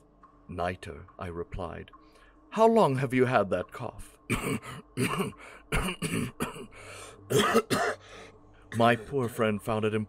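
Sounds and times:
man coughing: 4.3s - 8.0s, 8.7s - 9.5s.

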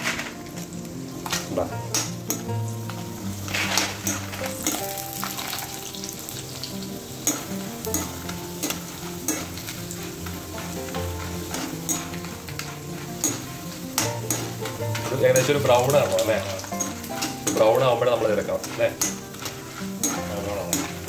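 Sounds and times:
food sizzling in hot oil: 0.0s - 21.0s
metal ladle scraping a pan: 0.0s - 21.0s.

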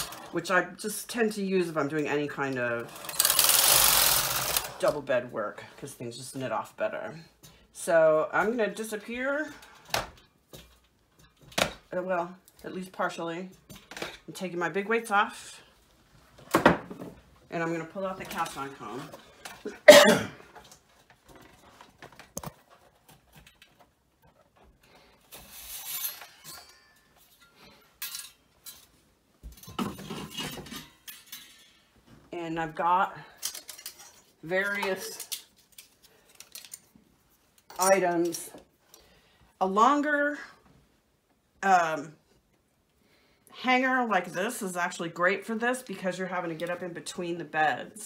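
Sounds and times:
metal weights clinking and rattling: 25.8s - 28.8s.

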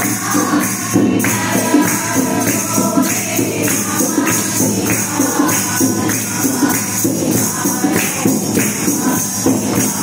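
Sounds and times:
jingling hand percussion: 0.0s - 10.0s
women singing a chant: 0.0s - 10.0s.

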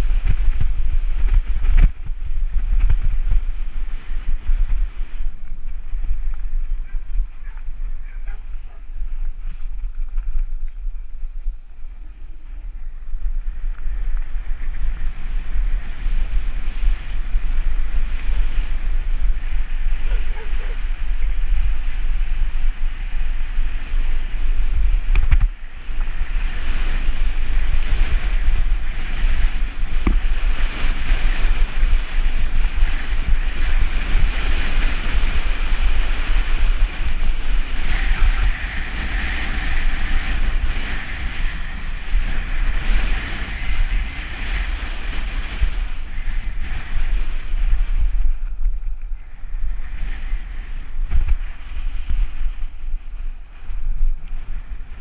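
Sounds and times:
bike tyres rolling over gravel: 0.0s - 55.0s
wind buffeting microphone: 0.0s - 55.0s.

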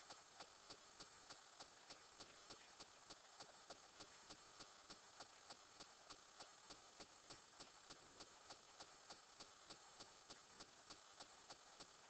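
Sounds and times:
faint evenly spaced ticking: 0.0s - 12.0s.

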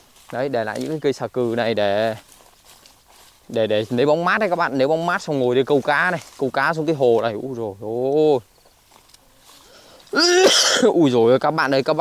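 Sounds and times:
man coughing and clearing throat: 10.1s - 11.0s.

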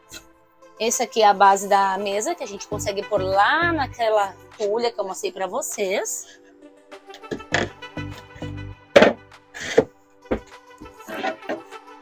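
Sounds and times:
background music: 0.0s - 12.0s
furniture thunks and knocks: 9.0s - 9.2s, 10.3s - 10.5s.

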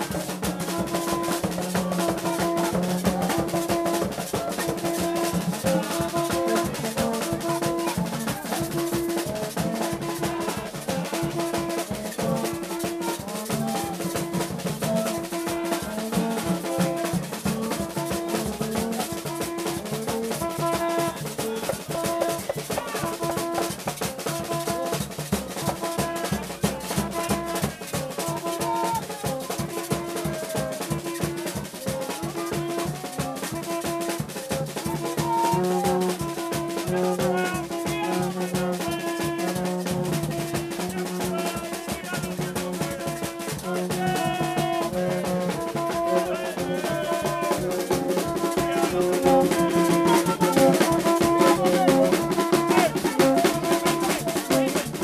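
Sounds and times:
snare drum: 0.0s - 55.0s
trumpet line: 0.0s - 55.0s.

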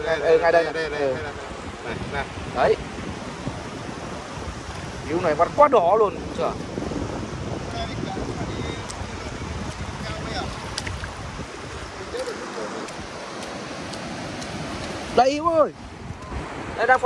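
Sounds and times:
surf washing over sand: 0.0s - 17.0s
wind buffeting microphone: 0.0s - 17.0s.

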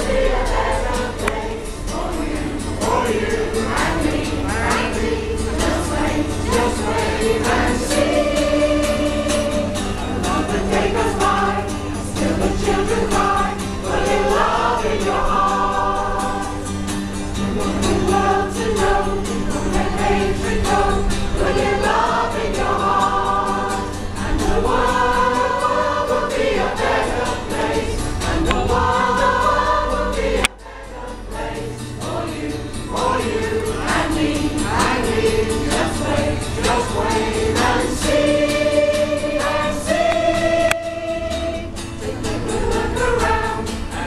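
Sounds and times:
choir singing a rock song: 0.0s - 44.0s
strummed acoustic guitar: 0.0s - 44.0s.

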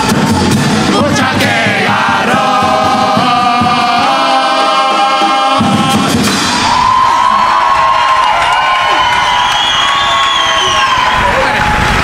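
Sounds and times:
chorus singing: 0.0s - 7.6s
audience applause and cheering: 5.3s - 12.0s.

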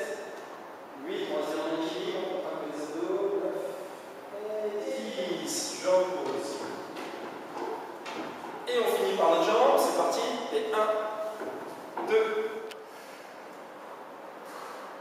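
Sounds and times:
person talking: 4.3s - 7.7s, 8.6s - 11.2s, 12.0s - 12.7s.

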